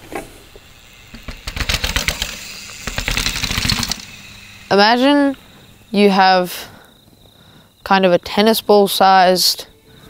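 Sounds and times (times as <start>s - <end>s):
bicycle rattling over rough ground: 0.0s - 7.4s.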